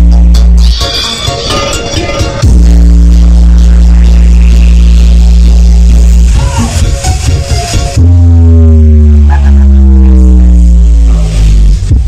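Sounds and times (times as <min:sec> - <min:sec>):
deep bass note from subwoofers: 0:00.0 - 0:00.8, 0:02.0 - 0:12.0.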